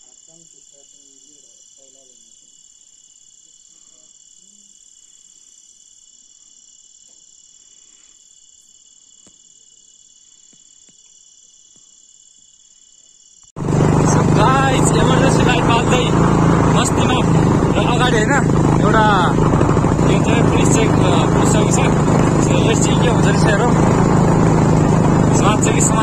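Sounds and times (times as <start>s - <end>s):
voices: 0.0s - 2.6s, 13.6s - 26.0s
crickets chirping: 0.0s - 26.0s
vehicle engine hum: 13.6s - 26.0s.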